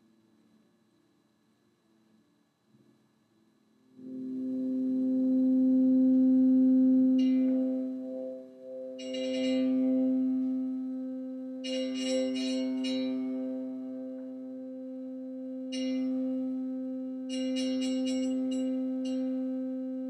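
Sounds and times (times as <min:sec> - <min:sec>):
sustained piano string tone: 0:04.1 - 0:20.0.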